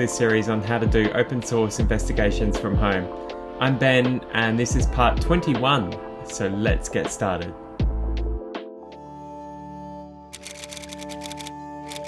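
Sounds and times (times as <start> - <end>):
background music sustained notes: 0.0 - 12.0
rapid keyboard typing clicks: 10.4 - 12.0.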